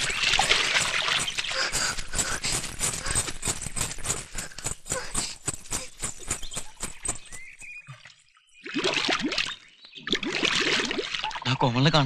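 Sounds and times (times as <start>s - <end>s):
footsteps through dry leaves: 0.0s - 7.8s.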